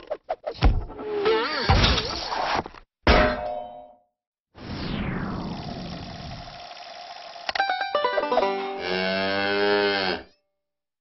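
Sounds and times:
cow mooing: 8.8 - 10.4.

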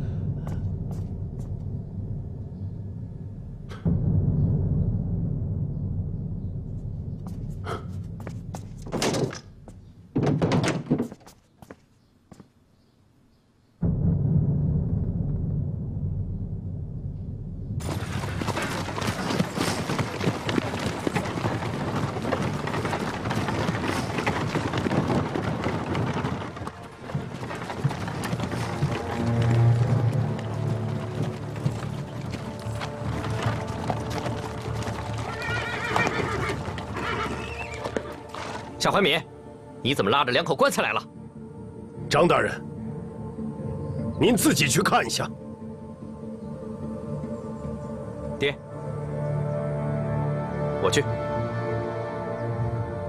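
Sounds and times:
background score music: 0.0 - 11.2, 13.2 - 53.0
hooves clip-clopping: 17.8 - 39.1
horse whinnying: 34.6 - 38.4.

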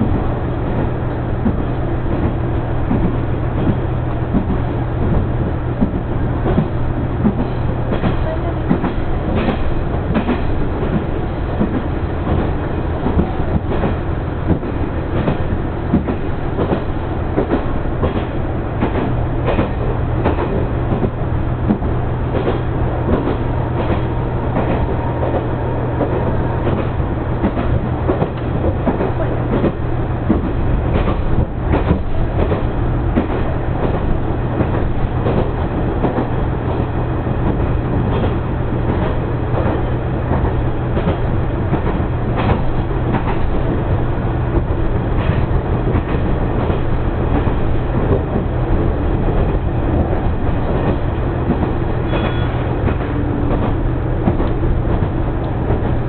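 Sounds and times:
rail joint clicks and knocks: 0.0 - 56.0.

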